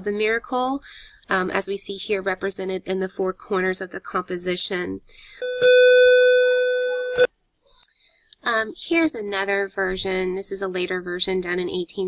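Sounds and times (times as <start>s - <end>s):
electronic beep: 5.4s - 7.3s.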